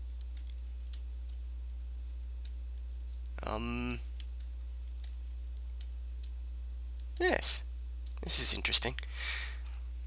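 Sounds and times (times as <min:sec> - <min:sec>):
low electrical hum: 0:00.0 - 0:10.0
mouse clicks: 0:04.2 - 0:06.4.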